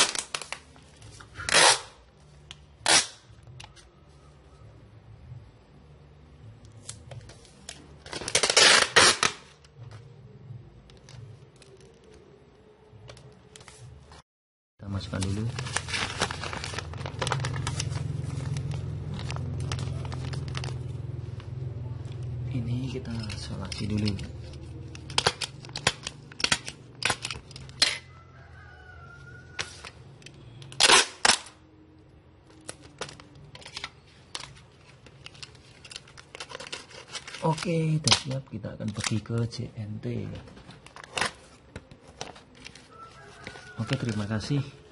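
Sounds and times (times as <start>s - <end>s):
adhesive tape ripping off roll: 0.0s - 0.6s, 1.4s - 2.0s, 2.8s - 3.3s, 8.1s - 9.6s, 30.7s - 31.6s
packing material crackling rustle: 14.9s - 21.3s, 32.5s - 39.5s.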